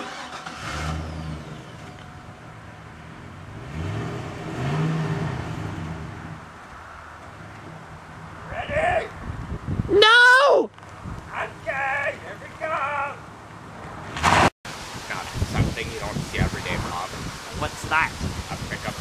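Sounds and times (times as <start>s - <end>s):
car engine revving: 0.0s - 6.5s.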